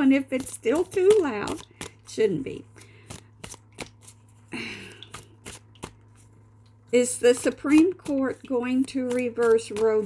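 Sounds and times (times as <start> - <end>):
cards tapping clicks: 0.3 - 2.1, 2.8 - 4.2, 7.4 - 10.0
cards shuffling: 2.7 - 6.4.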